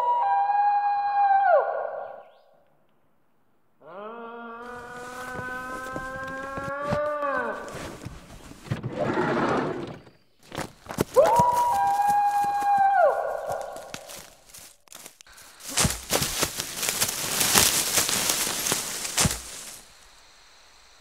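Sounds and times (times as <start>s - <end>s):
footsteps through dry leaves: 4.7s - 8.5s, 10.5s - 20.0s.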